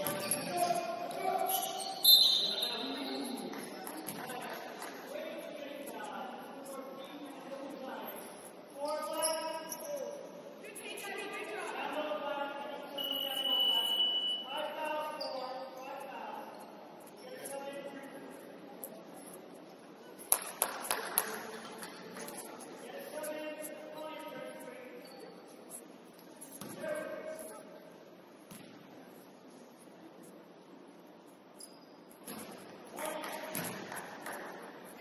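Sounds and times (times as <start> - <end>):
whistle blast: 1.5 - 2.7, 13.0 - 14.4.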